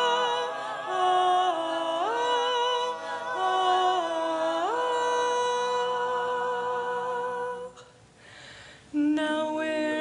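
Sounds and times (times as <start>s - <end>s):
a cappella group singing chord: 0.0s - 7.7s.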